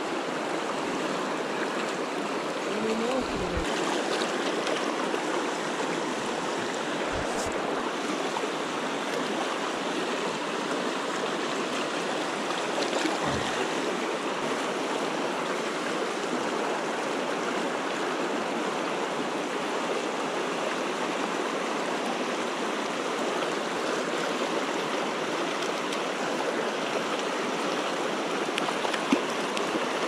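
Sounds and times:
stream water rushing: 0.0s - 30.0s.

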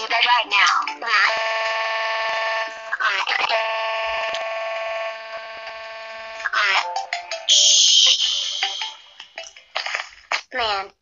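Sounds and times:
synthetic tone with overtones: 5.9s - 9.7s.

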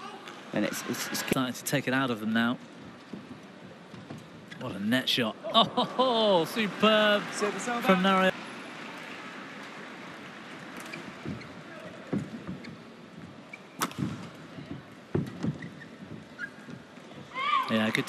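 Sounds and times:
arena crowd hum: 0.0s - 18.0s
racket striking shuttlecock: 13.8s - 14.3s.

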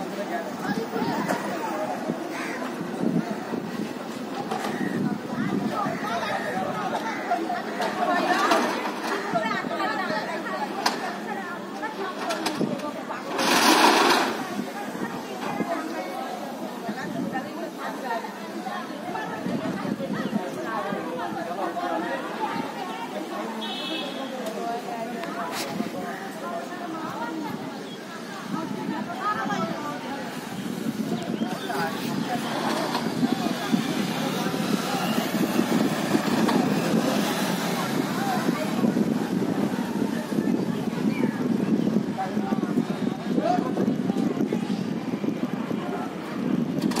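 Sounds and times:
distant people quarrelling: 0.0s - 47.0s
people talking over one another: 0.0s - 47.0s.

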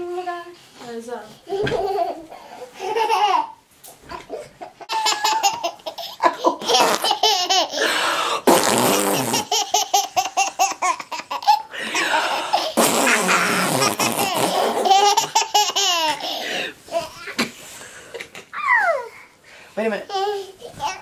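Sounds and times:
toddler giggling: 1.5s - 7.9s, 8.9s - 17.5s
breathy gasps: 7.8s - 8.5s, 16.2s - 16.8s.

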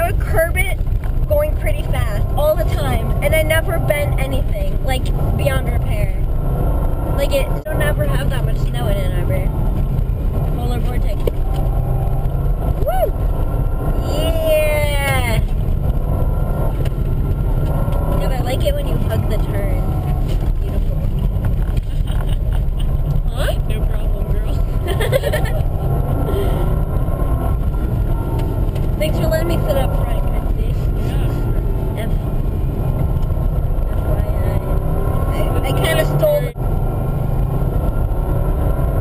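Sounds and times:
engine and tyres rumbling: 0.0s - 39.0s.

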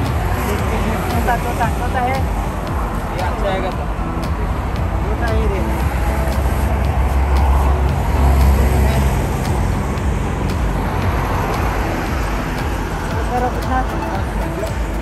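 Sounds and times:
highway traffic rumble: 0.0s - 15.0s.

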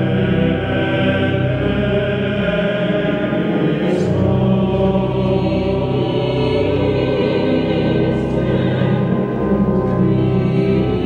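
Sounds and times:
mixed choir singing: 0.0s - 11.0s
pipe organ bass notes: 0.0s - 11.0s.

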